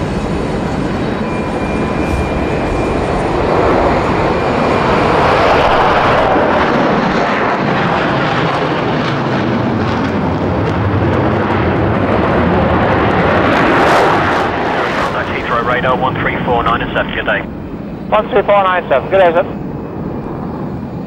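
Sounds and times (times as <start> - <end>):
jet engines at takeoff: 0.0 - 21.0.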